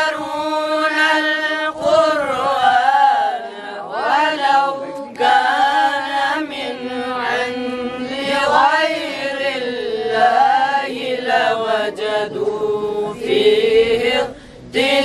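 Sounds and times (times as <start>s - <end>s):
boys chanting a hymn: 0.0s - 15.0s.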